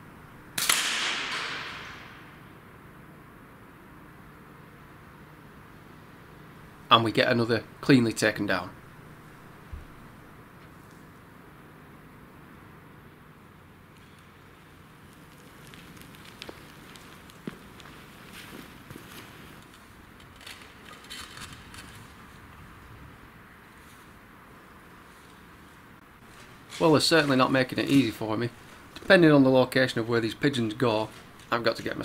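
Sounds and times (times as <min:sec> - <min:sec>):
low background hiss: 0:00.0 - 0:20.9, 0:22.1 - 0:32.0
light clicks and crunches: 0:13.9 - 0:22.6
footsteps on loose ground: 0:15.0 - 0:22.4, 0:26.2 - 0:29.4.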